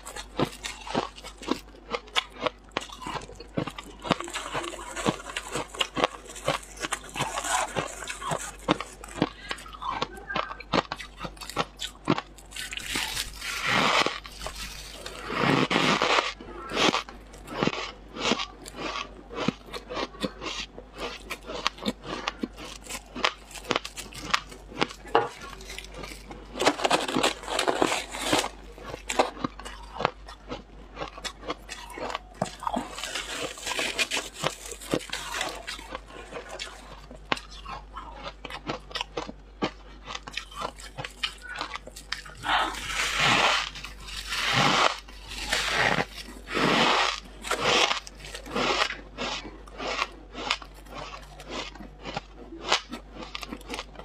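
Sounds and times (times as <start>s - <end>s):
frost crunching: 0.0s - 54.0s.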